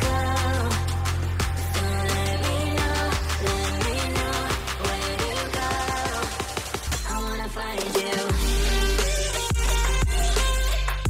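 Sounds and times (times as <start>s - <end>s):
electronic music with steady beat: 0.0s - 11.0s.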